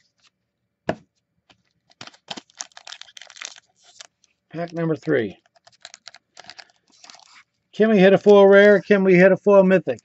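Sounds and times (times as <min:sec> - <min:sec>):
foil wrapper crinkling: 0:01.6 - 0:08.8.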